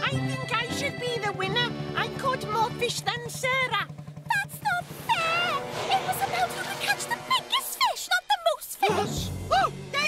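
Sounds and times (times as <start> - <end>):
boat engine chugging: 0.0 - 7.8
background music: 0.0 - 10.0.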